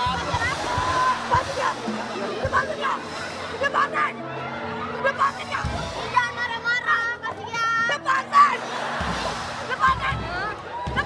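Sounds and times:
women shrieking and shouting: 0:00.0 - 0:07.0.

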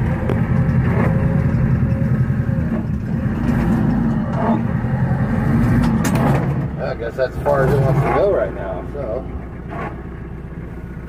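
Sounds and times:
front loader pushing snow: 0:00.0 - 0:11.0
tractor engine under load: 0:00.0 - 0:11.0.

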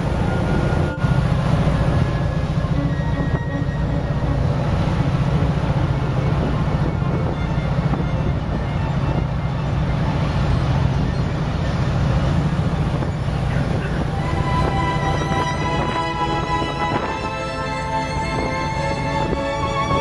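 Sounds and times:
boat engine rumbling: 0:00.0 - 0:20.0
wind and water rushing: 0:00.0 - 0:20.0.

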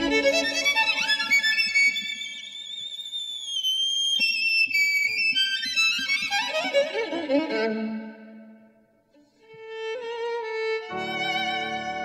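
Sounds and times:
violin high sustained note: 0:10.0 - 0:12.0.

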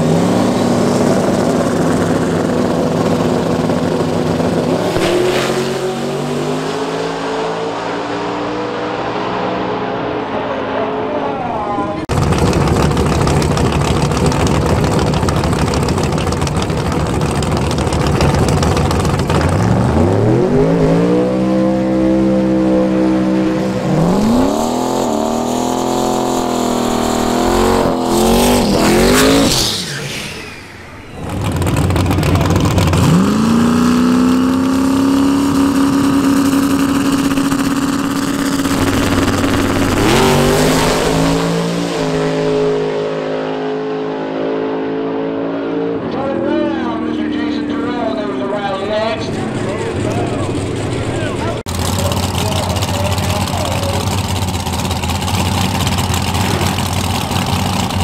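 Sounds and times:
car revving through burnout: 0:00.0 - 0:11.2, 0:12.0 - 0:58.0
drag car engines revving: 0:00.0 - 0:58.0.

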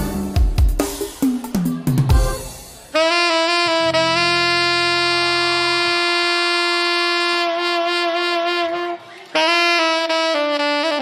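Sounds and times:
bass line: 0:01.6 - 0:08.8
saxophone melody: 0:02.1 - 0:11.0.

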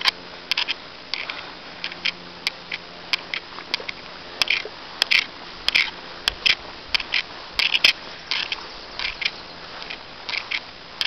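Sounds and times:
grass swishing under footsteps: 0:00.0 - 0:11.0
sharp clicks: 0:00.0 - 0:11.0.

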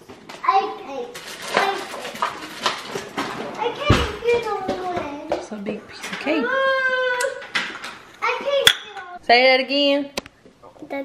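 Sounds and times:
child and adult talking: 0:00.4 - 0:07.6, 0:08.2 - 0:10.0, 0:10.6 - 0:11.0.

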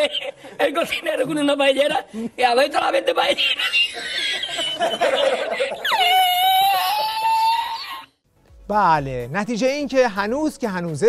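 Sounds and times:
man laughing uncontrollably: 0:00.0 - 0:00.8, 0:03.2 - 0:07.9.

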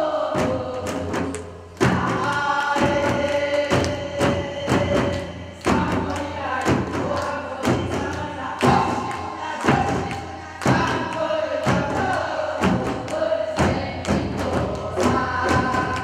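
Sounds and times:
group singing a folk song: 0:00.0 - 0:16.0
barrel drums beaten in rhythm: 0:00.1 - 0:16.0.

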